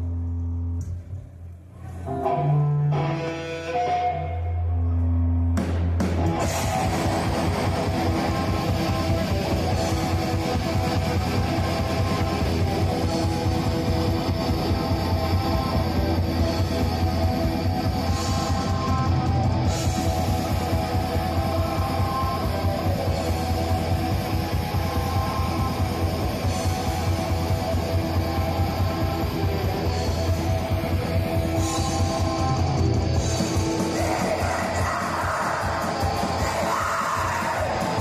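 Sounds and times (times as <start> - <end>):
distorted electric guitars: 1.8 - 38.0
fast dense drumming: 5.6 - 38.0.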